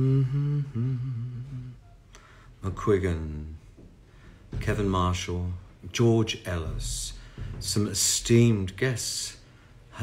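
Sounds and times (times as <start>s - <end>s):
man humming low notes: 0.0s - 2.1s.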